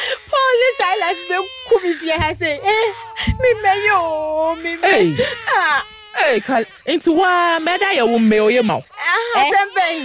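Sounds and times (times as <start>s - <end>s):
person wailing: 2.3s - 5.8s.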